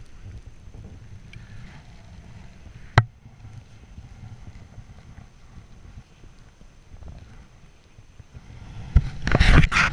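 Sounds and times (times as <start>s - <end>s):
faint low rumble: 0.0s - 9.9s.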